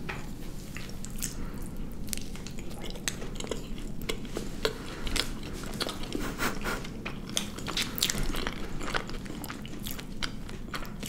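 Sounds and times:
people chewing ice cream sandwiches: 0.6 - 11.0.

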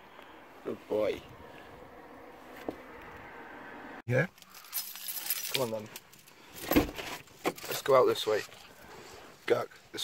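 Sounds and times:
small metal pieces jingling: 4.3 - 6.7.

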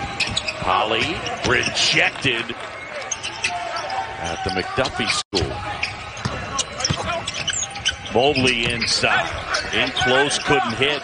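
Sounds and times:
low arena background noise: 0.0 - 11.0.

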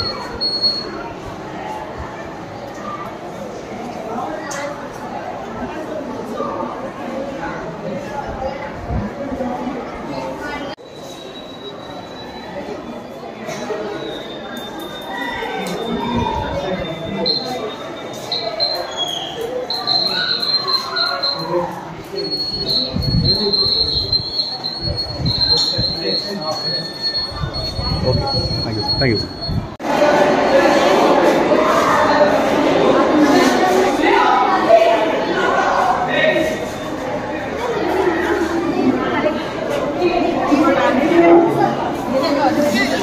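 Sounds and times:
background chatter: 0.0 - 43.0
low room murmur: 0.0 - 43.0
high-pitched tone: 16.8 - 29.8
high-pitched electronic buzzer: 19.7 - 21.6.

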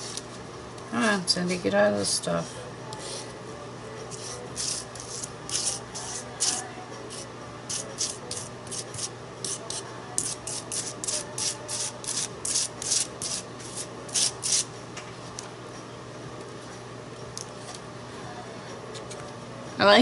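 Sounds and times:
palette knife scraping paste: 4.1 - 14.7.

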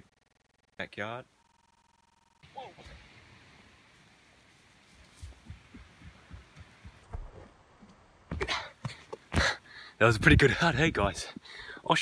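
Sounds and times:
bare feet running on sand: 5.0 - 7.4.

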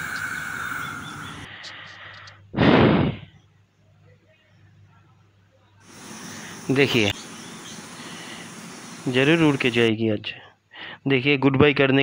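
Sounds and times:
heavy rain hissing: 0.0 - 1.7, 5.8 - 9.9.

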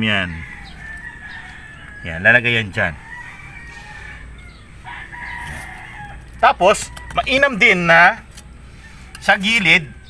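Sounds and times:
rooster crowing: 0.1 - 7.7, 8.6 - 10.0.

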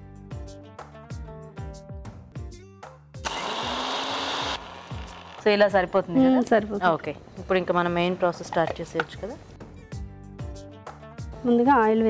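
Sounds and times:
background music with plucked notes: 0.0 - 3.4, 4.6 - 12.0
mixer grinder motor running: 3.2 - 5.8.

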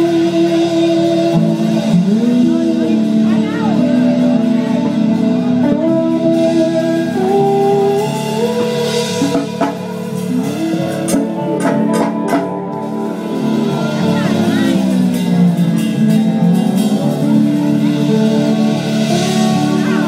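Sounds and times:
rock band playing: 0.0 - 20.0
sharp drum hits: 9.2 - 16.9.

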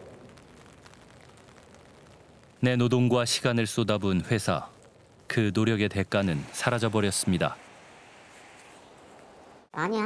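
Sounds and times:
light rain falling: 0.0 - 9.7.

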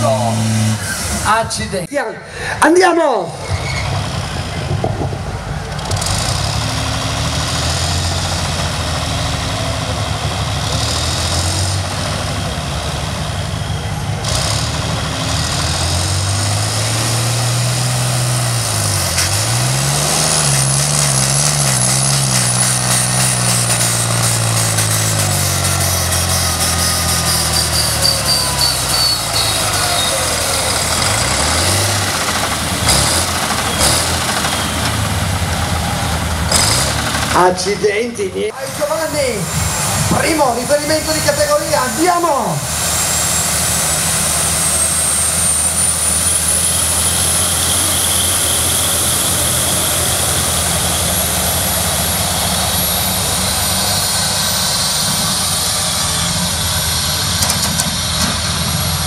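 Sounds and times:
tractor diesel engine at full throttle: 0.0 - 59.0
high whistle: 27.5 - 30.3.

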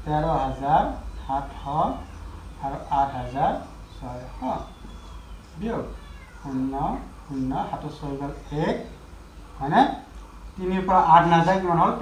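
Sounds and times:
man speaking drawn-out syllables: 2.6 - 4.7.

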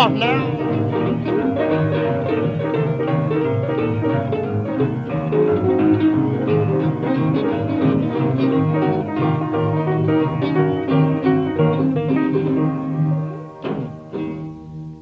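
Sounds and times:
blues guitar boogie line: 0.0 - 15.0.

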